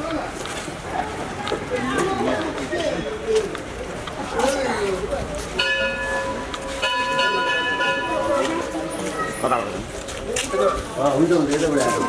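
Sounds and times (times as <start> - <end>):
temple bell ringing: 5.6 - 9.1.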